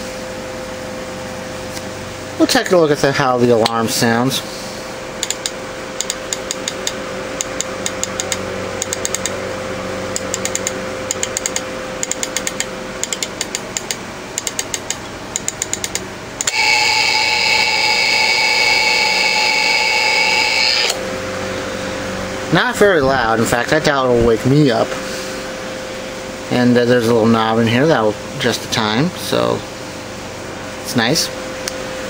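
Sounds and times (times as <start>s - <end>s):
alarm clock buzzing: 16.5s - 21.0s.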